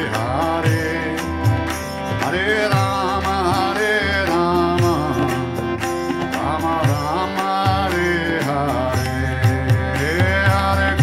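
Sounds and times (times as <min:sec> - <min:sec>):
person singing a chant: 0:00.0 - 0:01.4, 0:02.0 - 0:05.6, 0:06.2 - 0:11.0
harmonium chords: 0:00.0 - 0:11.0
tabla strokes: 0:00.0 - 0:11.0.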